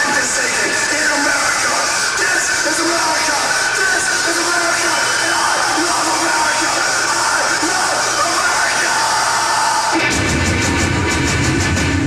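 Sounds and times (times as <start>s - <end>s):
concert crowd noise: 0.0s - 12.0s
heavy metal band playing: 0.0s - 12.0s.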